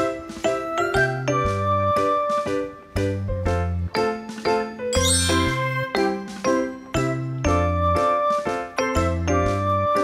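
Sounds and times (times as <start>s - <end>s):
bouncy chiming bell music: 4.9s - 6.2s.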